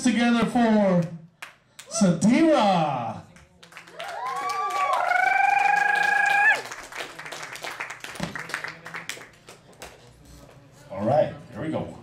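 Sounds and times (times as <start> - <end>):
person whooping: 4.0 - 6.6
hand claps: 5.9 - 10.0.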